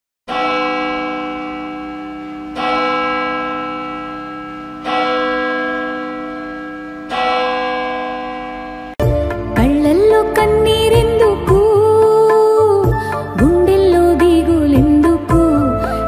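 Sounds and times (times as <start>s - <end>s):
church bell tolling: 0.3s - 9.1s.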